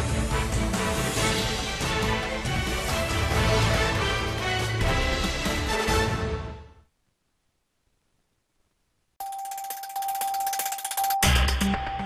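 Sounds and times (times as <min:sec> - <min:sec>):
rapid fine ticking: 0:09.2 - 0:11.7.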